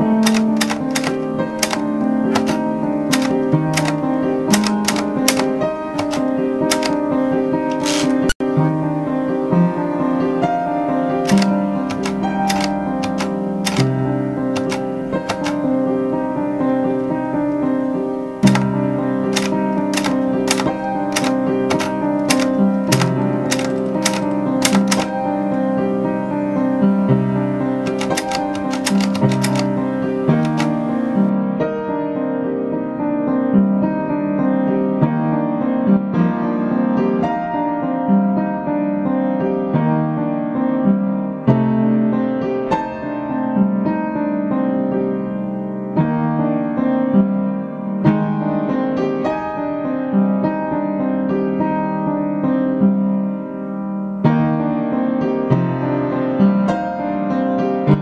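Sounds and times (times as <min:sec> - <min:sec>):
typewriter keys clacking: 0:00.0 - 0:07.0, 0:07.7 - 0:08.4, 0:11.2 - 0:15.7, 0:18.2 - 0:25.4, 0:27.8 - 0:31.3
piano music: 0:00.0 - 0:58.0
sharp irregular clicks: 0:00.2 - 0:07.0, 0:07.7 - 0:08.4, 0:11.3 - 0:15.7, 0:18.4 - 0:25.2, 0:27.8 - 0:31.3.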